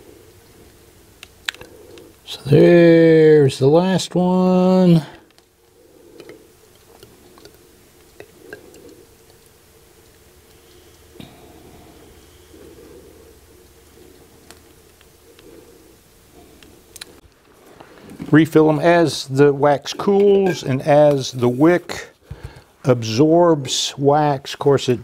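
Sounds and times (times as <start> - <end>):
steady low hum: 0.0 - 25.0.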